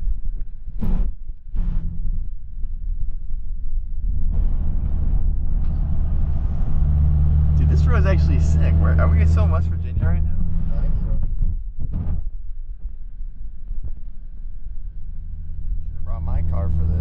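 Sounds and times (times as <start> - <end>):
car engine and tyre noise: 0.4 - 17.0
person speaking: 7.6 - 11.1.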